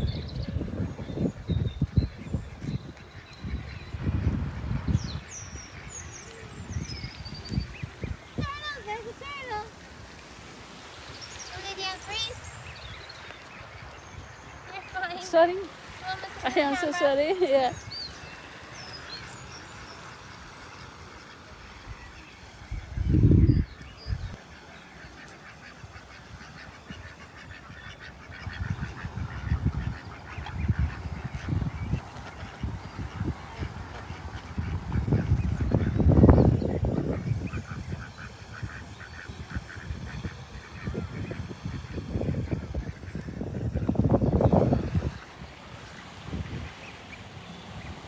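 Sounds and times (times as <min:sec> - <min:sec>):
ducks quacking: 0:00.0 - 0:48.0.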